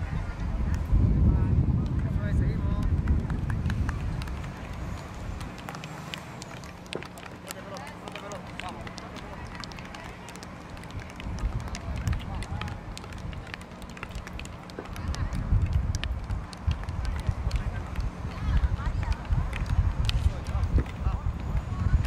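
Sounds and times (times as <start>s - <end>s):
players calling out faintly: 3.5s - 22.0s
hockey sticks hitting ball: 4.7s - 15.4s.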